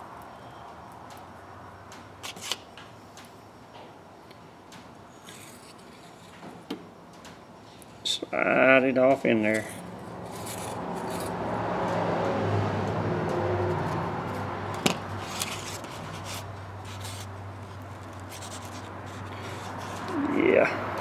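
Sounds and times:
rod blank sections rubbing: 9.6 - 11.4.

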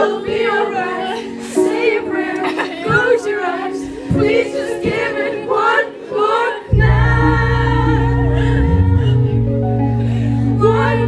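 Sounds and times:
voices singing pop song in harmony: 0.0 - 11.0.

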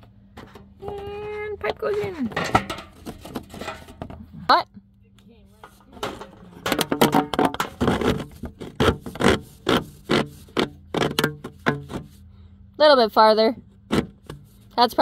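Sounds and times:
plastic hose scraping against wood: 5.7 - 12.2.

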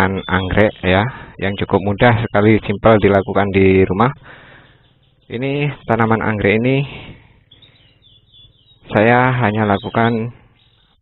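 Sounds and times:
faint bird chirps: 0.0 - 11.0.

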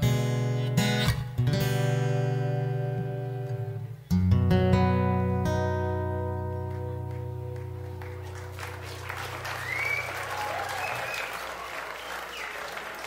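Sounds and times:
audience applause: 7.6 - 13.0
whistles from audience: 8.8 - 13.0.

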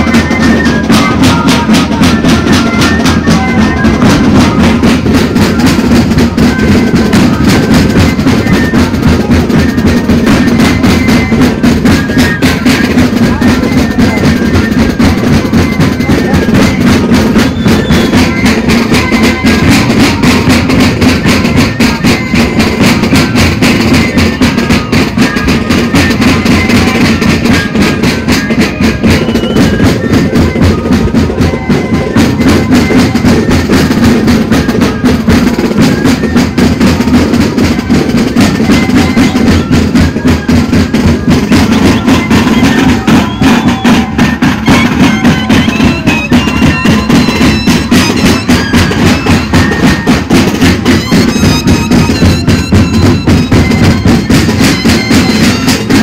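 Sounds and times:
cane flutes playing melody: 0.0 - 56.0
steady drum beat: 0.0 - 56.0.

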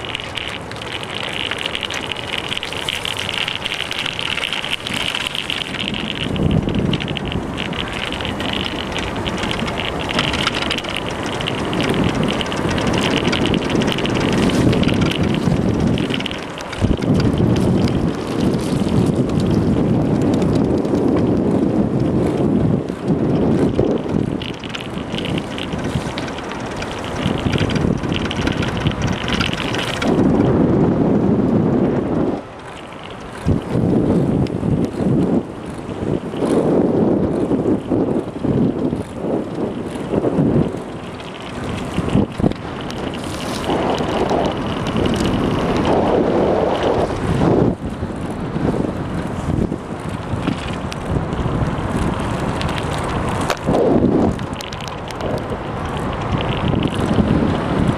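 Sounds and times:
bicycle tyres rolling: 0.0 - 57.9
wind noise on microphone: 0.0 - 57.9.

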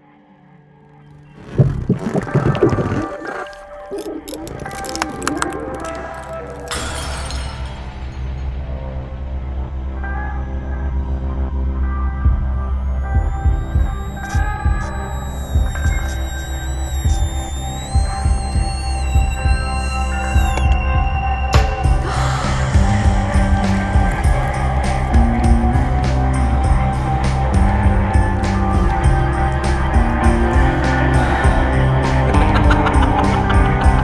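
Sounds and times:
low droning music: 0.0 - 34.0
held high tones: 1.4 - 7.4, 12.6 - 21.2
glass shattering: 4.4 - 8.4.

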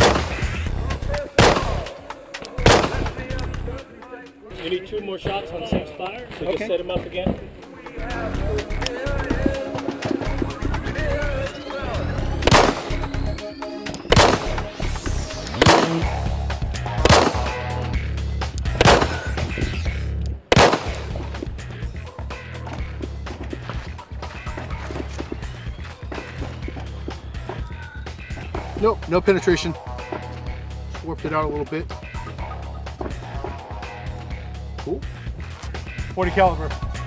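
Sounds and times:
handgun shots: 0.0 - 0.4, 1.4 - 3.2, 12.4 - 13.0, 14.1 - 14.6, 15.6 - 16.1, 17.0 - 17.6, 18.8 - 19.4, 20.5 - 21.2
music with heavy beat: 7.0 - 30.9, 31.8 - 37.0.

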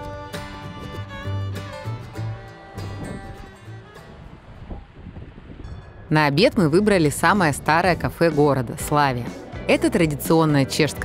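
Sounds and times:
wind blowing on microphone: 2.8 - 8.8.

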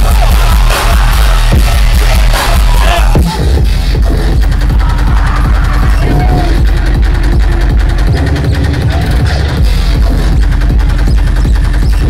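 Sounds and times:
dubstep music over club speakers: 0.0 - 12.0.

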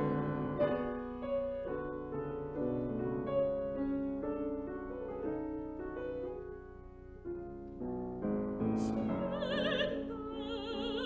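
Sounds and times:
grand piano held chords: 0.0 - 11.0.

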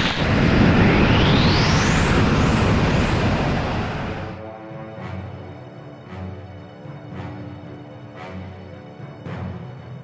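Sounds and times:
high whistle gliding upward: 0.0 - 4.4.

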